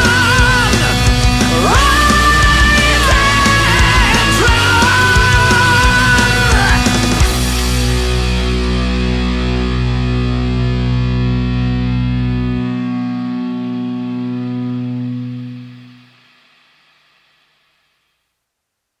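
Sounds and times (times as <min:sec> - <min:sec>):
bass guitar: 0:00.0 - 0:16.2
distorted electric guitar chord: 0:00.0 - 0:16.7.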